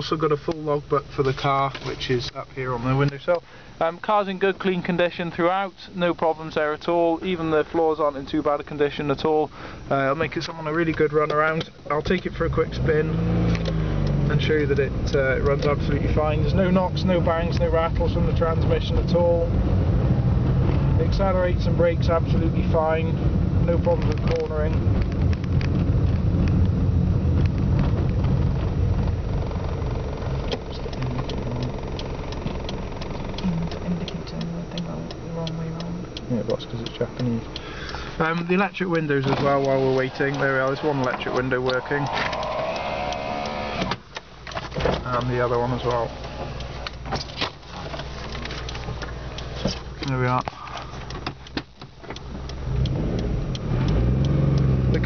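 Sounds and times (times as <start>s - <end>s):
car engine and road rumble: 0.0s - 55.0s
turn signal ticking: 0.0s - 55.0s
car engine revving from inside: 12.4s - 24.0s, 39.1s - 44.0s, 52.2s - 55.0s.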